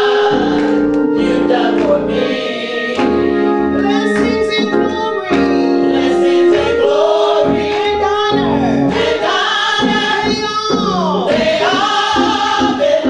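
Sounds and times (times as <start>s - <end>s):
choir singing gospel: 0.0s - 13.0s.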